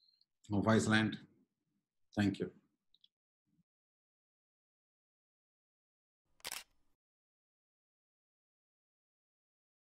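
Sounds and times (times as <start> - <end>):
camera shutter click: 6.4 - 6.7.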